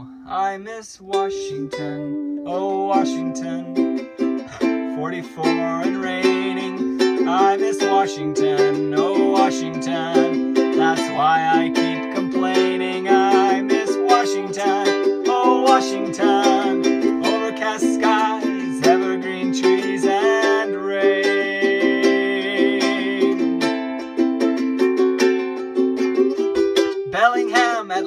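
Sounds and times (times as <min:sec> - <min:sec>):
ukulele strumming chords: 0:00.0 - 0:28.0.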